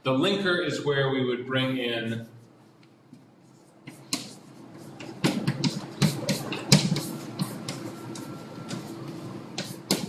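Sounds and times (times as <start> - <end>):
chalk scratching on blackboard: 3.4 - 10.0.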